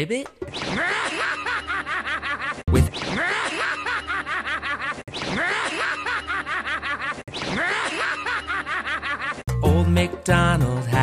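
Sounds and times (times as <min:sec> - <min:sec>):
cartoon character cackling laugh: 0:00.6 - 0:09.5.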